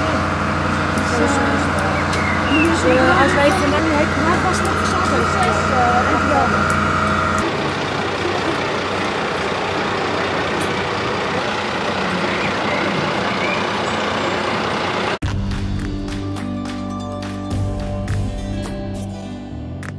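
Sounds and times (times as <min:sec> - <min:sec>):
faint voices: 0:00.0 - 0:14.7
rushing outdoor noise: 0:00.0 - 0:15.2
engine hum with high whine: 0:00.0 - 0:16.2
music: 0:15.2 - 0:19.9.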